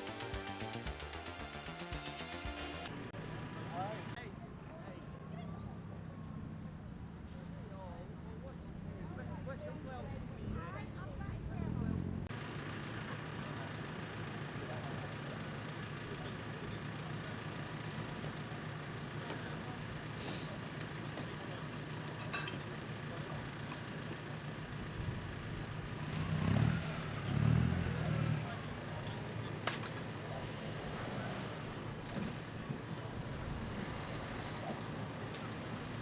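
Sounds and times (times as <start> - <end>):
engine idling: 9.1 - 36.0.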